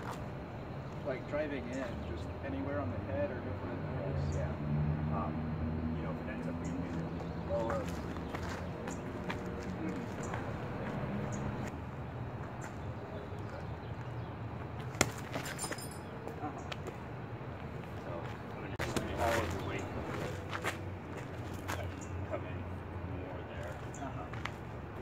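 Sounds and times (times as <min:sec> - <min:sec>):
low city rumble: 0:00.0 - 0:25.0.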